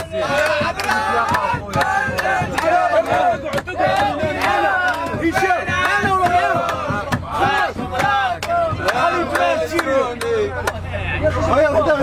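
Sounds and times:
rhythmic handclaps: 0.0s - 10.8s
men chanting and singing: 0.0s - 12.0s.

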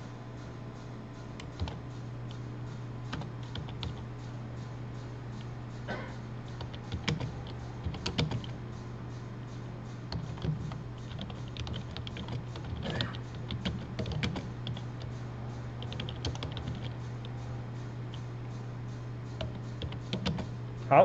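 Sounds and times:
low electrical hum: 0.0s - 21.0s
keyboard typing: 1.4s - 1.8s, 3.1s - 4.1s, 6.6s - 8.6s, 10.1s - 15.1s, 15.8s - 17.4s, 19.4s - 20.5s.

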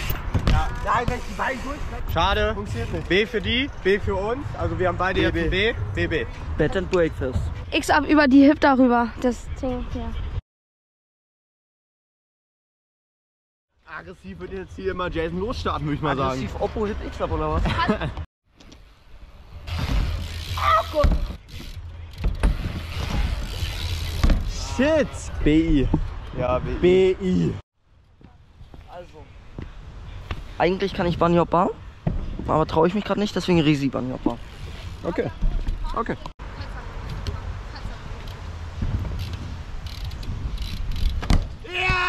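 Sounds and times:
bike tyres rumbling on ramp: 19.6s - 26.1s, 38.7s - 42.0s
bike clicks and rattles: 19.7s - 24.8s, 34.2s - 36.3s, 37.0s - 41.6s
wind buffeting microphone: 34.6s - 41.7s.

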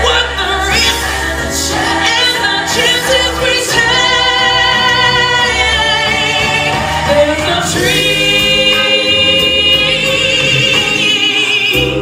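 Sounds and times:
musical accompaniment: 0.0s - 12.0s
woman singing with vibrato: 0.0s - 12.0s.

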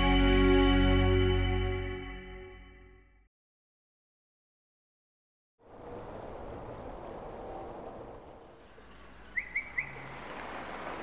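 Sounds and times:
faint outdoor ambience: 5.6s - 11.0s
bird chirping: 8.6s - 10.2s.

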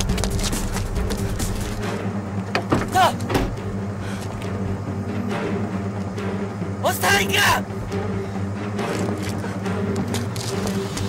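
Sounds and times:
person exclaiming: 2.9s - 3.2s.

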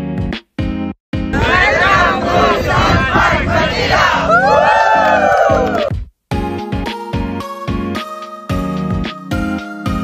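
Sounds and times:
group of people cheering: 1.4s - 5.9s.

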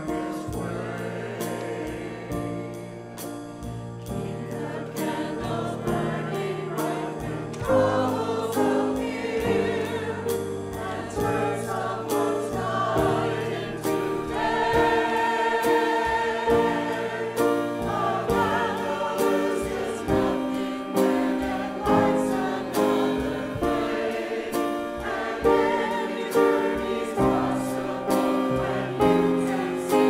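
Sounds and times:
church choir singing: 0.0s - 30.0s
instrumental accompaniment: 0.0s - 30.0s.

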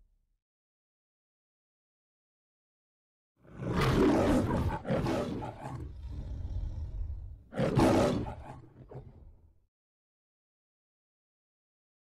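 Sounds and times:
lion roaring: 3.4s - 9.4s
low growl: 3.4s - 9.4s.

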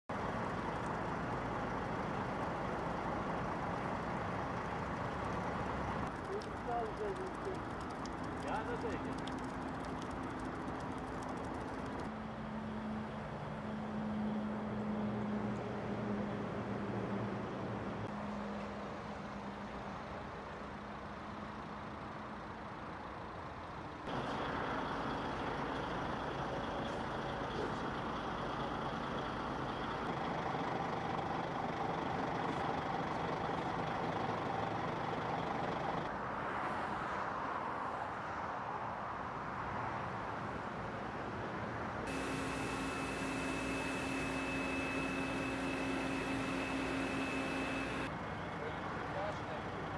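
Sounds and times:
vehicle engine running: 0.1s - 12.1s, 42.1s - 48.2s
motorway traffic noise: 0.1s - 49.9s.

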